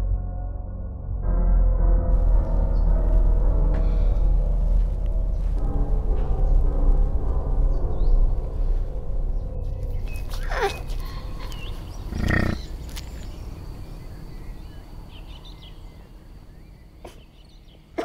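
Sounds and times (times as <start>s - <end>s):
music with sustained drone: 0.0s - 18.0s.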